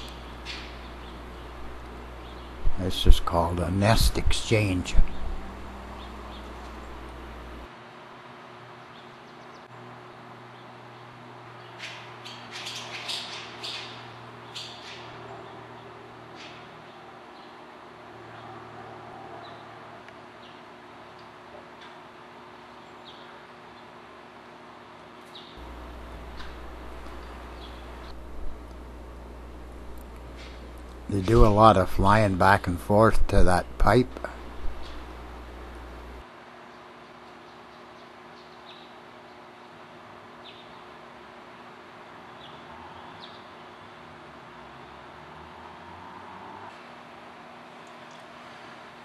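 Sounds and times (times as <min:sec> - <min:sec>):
swallows chirping and twittering: 0:00.0 - 0:07.6, 0:11.6 - 0:17.6, 0:25.3 - 0:28.3, 0:34.3 - 0:36.2
steady low hum: 0:00.0 - 0:07.8, 0:25.6 - 0:36.3.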